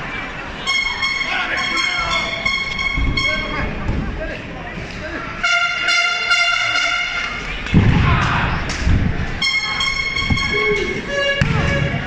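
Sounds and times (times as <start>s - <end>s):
crowd noise: 0.0s - 12.0s
steady horn-like tone: 0.6s - 3.8s, 5.3s - 7.5s, 9.4s - 12.0s
low knocks: 11.4s - 12.0s.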